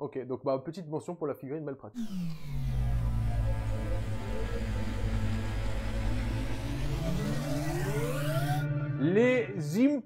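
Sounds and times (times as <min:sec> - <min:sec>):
low rumbling transition effect: 0:02.0 - 0:08.8.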